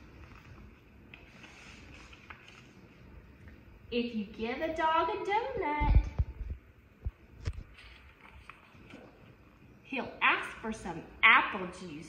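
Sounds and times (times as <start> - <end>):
paper rustle: 0.1 - 2.9, 7.5 - 9.2.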